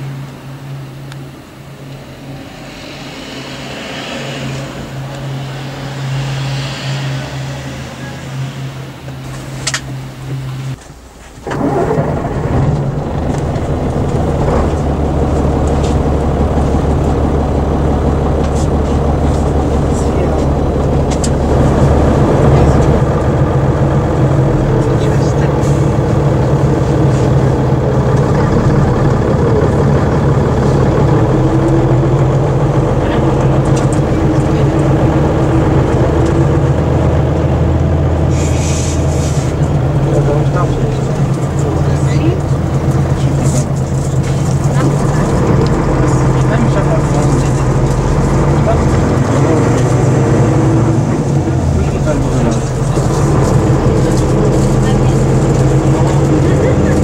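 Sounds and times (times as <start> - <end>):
diesel engine idling: 0.0 - 57.0
engine drone inside bus: 0.0 - 57.0.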